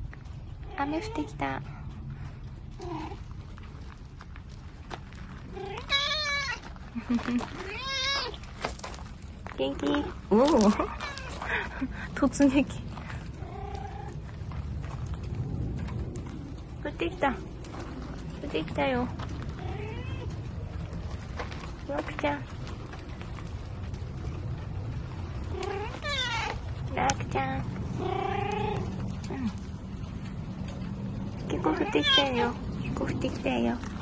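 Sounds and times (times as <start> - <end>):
cat meowing: 5.5 - 6.6, 7.6 - 8.4, 10.8 - 11.3, 25.5 - 26.6.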